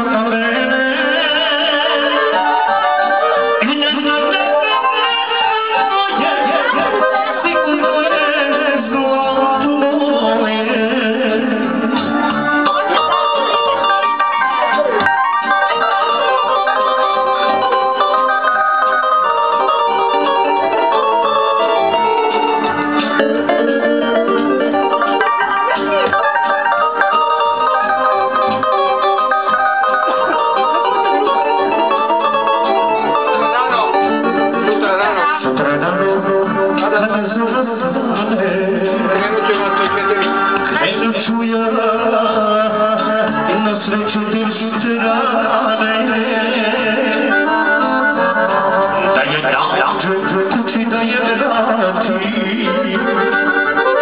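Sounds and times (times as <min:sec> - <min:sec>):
amplified live band music: 0:00.0 - 0:54.0
button accordion: 0:01.8 - 0:09.1, 0:11.7 - 0:41.3, 0:46.5 - 0:50.7, 0:51.4 - 0:54.0
electronic keyboard: 0:12.0 - 0:37.8.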